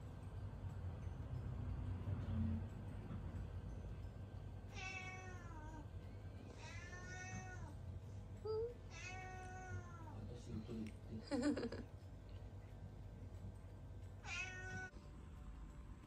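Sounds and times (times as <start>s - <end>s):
cat meowing: 4.7s - 5.8s, 6.6s - 7.7s, 8.9s - 10.2s, 14.2s - 14.9s.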